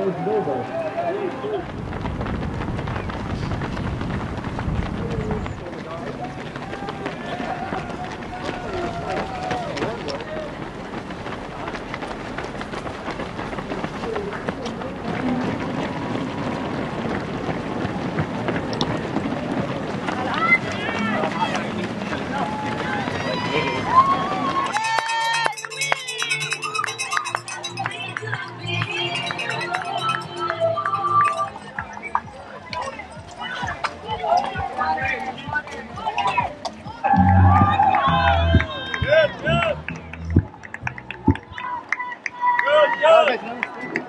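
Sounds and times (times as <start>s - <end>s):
running footsteps on asphalt: 0.0s - 44.0s
people clapping: 3.1s - 33.0s, 36.3s - 44.0s
crowd cheering and shouting: 6.6s - 10.5s, 22.2s - 32.0s, 32.6s - 44.0s
voices calling out: 22.7s - 34.2s
cowbell shaken: 24.7s - 32.1s
low rumble: 37.1s - 41.4s.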